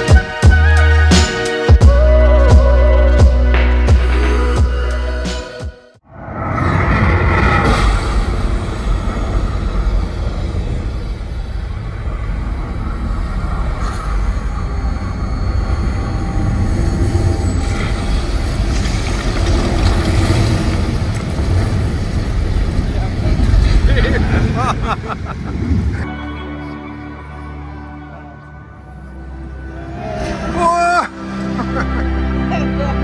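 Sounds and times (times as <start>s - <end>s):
deep spacecraft engine rumble: 6.0s - 26.1s.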